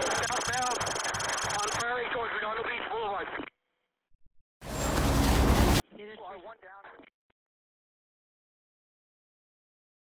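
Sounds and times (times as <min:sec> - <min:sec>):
two-way radio voice: 0:00.0 - 0:03.5, 0:05.8 - 0:07.1.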